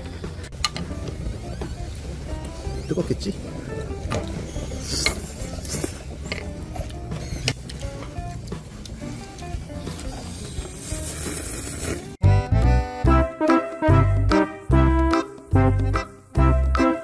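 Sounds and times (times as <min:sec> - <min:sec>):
quiet background music: 0:00.0 - 0:17.0
noodles being slurped: 0:08.8 - 0:12.2.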